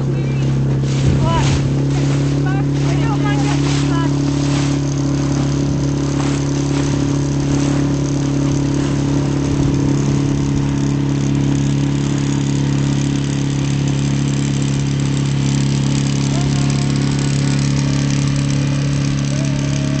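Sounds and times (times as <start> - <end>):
boat engine droning: 0.0 - 20.0.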